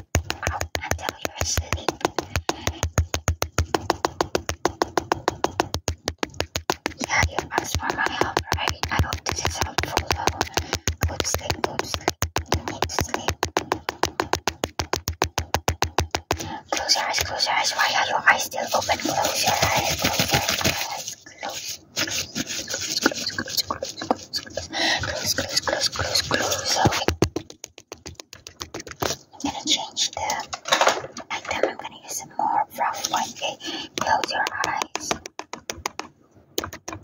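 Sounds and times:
fast tapping on camera lens: 0.0s - 32.0s, 32.8s - 37.0s.

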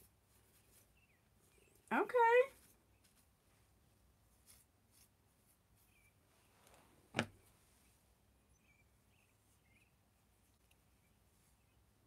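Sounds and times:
faint rustling: 0.0s - 12.0s.

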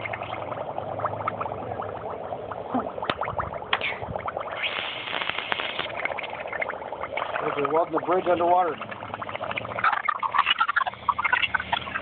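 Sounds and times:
sparkler fizzing under water: 3.1s - 6.4s.

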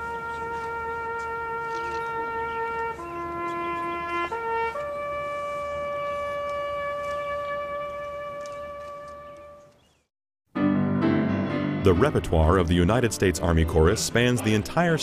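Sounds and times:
solo bugle call: 0.0s - 9.8s.

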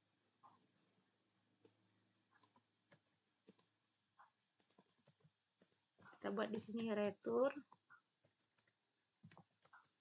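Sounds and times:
computer keyboard keystrokes: 4.6s - 5.8s, 7.7s - 9.8s.

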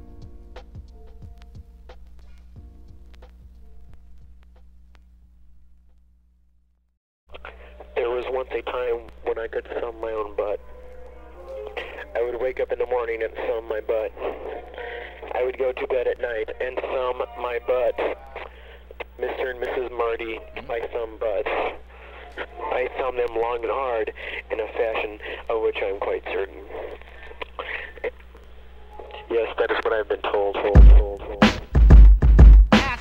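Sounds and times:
steady low hum: 0.0s - 31.5s
person talking over radio: 7.3s - 10.6s, 11.7s - 28.2s, 29.0s - 31.4s.

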